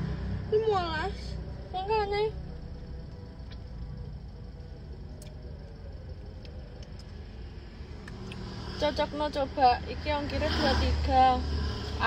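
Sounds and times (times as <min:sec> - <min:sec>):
car interior hum: 0:00.0 - 0:12.0.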